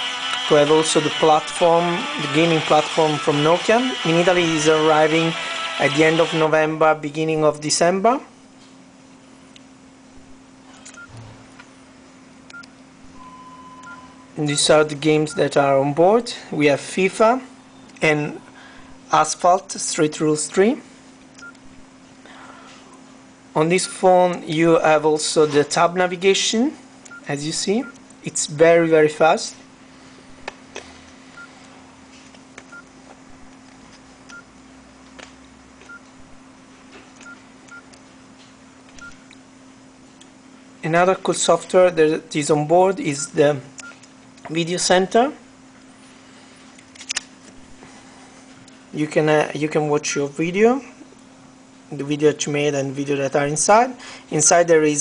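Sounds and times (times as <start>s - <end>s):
low steady hum: 0.0s - 55.0s
short high key beeps: 12.5s - 14.4s.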